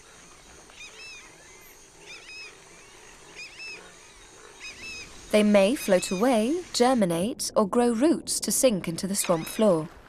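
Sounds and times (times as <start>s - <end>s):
quiet outdoor ambience: 0.0s - 10.0s.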